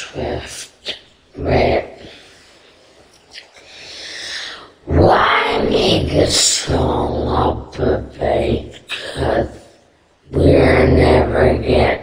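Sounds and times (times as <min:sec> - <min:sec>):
pitch-shifted breath hiss: 0:02.0 - 0:04.9.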